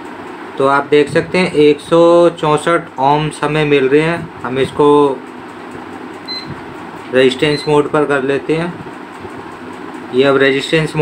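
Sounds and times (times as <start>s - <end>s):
multimeter beep: 6.3s - 6.6s, 7.4s - 7.9s.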